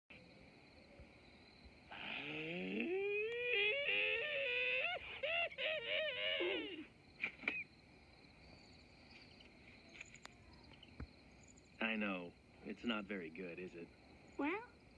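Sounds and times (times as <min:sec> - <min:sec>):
faint steady hiss: 0:00.1 - 0:14.9
short cries: 0:01.9 - 0:07.6
cartoon wolf howling: 0:02.1 - 0:06.9.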